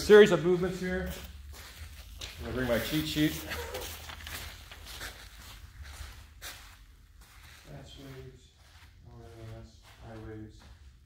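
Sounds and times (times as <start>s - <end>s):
handling noises: 0.0s - 8.3s
footsteps on artificial turf: 0.0s - 11.0s
man's voice murmuring: 2.6s - 4.0s.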